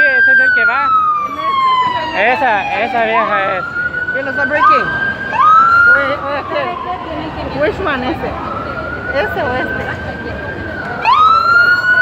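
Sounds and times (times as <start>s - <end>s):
police siren wailing: 0.0s - 12.0s.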